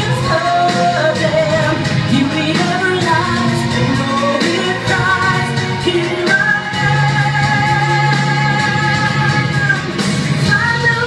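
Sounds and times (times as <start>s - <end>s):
person singing: 0.0s - 11.0s
pop ballad backing music: 0.0s - 11.0s.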